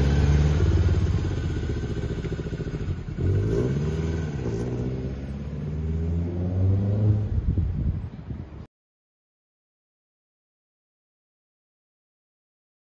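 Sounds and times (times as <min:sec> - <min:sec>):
car engine pulling away: 0:00.0 - 0:07.5.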